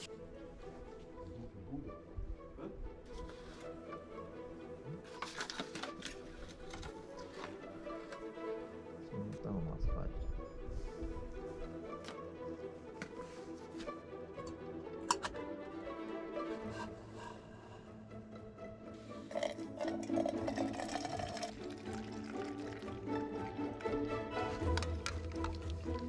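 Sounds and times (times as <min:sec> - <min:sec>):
background music with held notes: 0:00.0 - 0:26.0
coffee pouring into a mug: 0:19.3 - 0:23.0, 0:24.6 - 0:26.0.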